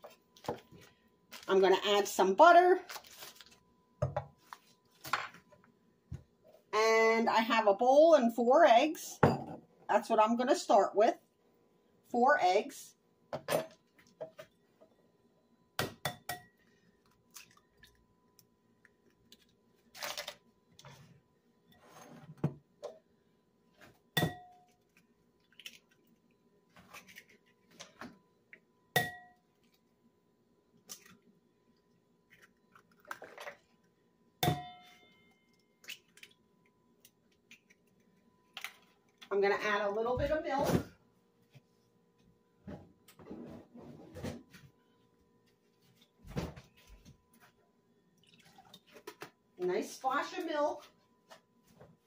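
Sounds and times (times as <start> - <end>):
glass bowl ringing: 24.2 - 24.6, 29.0 - 29.4, 34.4 - 35.6.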